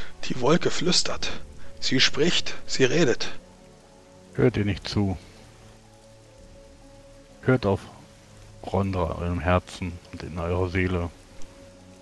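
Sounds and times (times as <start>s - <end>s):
ambient background music: 0.0s - 12.0s
soft hiss: 0.0s - 12.0s.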